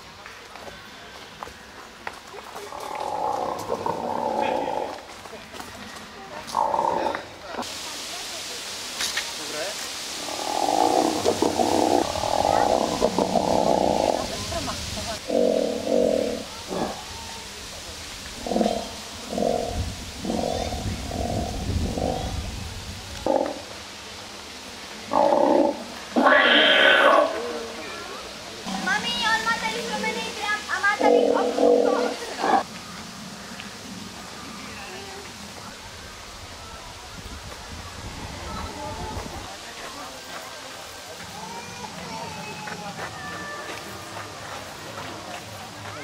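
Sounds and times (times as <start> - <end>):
dinosaur roars and growls: 2.7 - 5.0, 10.2 - 14.5, 18.4 - 22.5.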